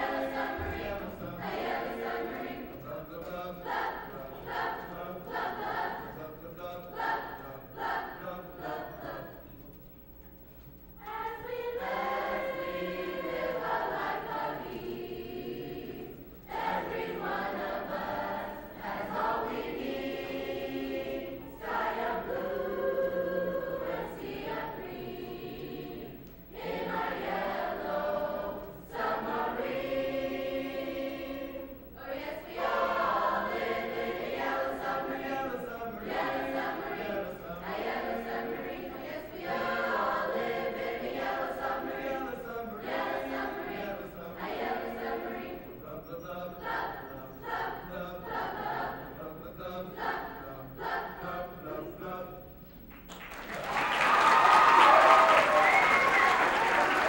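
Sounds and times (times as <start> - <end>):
mixed choir singing: 0.0 - 9.6, 11.0 - 57.0.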